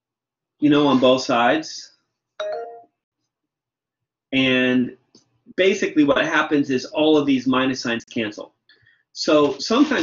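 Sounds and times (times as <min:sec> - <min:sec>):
two-tone chime: 0:02.4 - 0:02.9.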